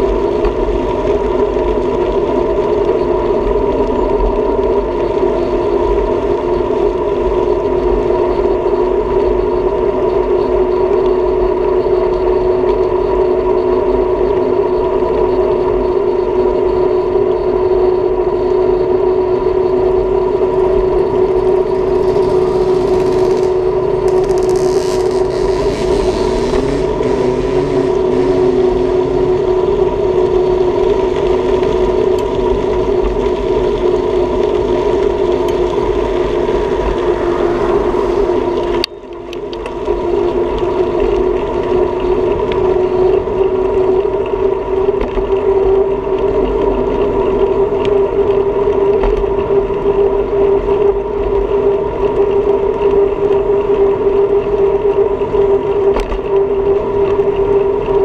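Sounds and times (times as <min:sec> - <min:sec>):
bicycle rolling on asphalt: 0:00.0 - 0:09.2, 0:19.3 - 0:58.0.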